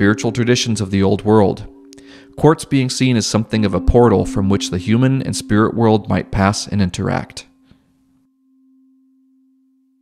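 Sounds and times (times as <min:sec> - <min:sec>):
low ringing music tone: 0:00.0 - 0:10.0.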